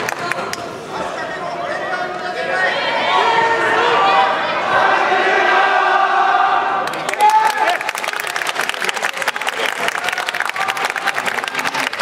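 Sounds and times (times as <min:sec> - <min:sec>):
crowd chanting shouts: 0:02.6 - 0:07.8.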